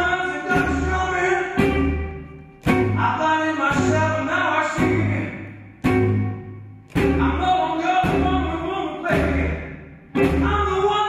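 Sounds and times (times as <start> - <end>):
man singing: 0.0 - 2.0, 2.8 - 5.6, 7.0 - 11.0
blues band chords: 0.0 - 11.0
double bass: 0.0 - 11.0.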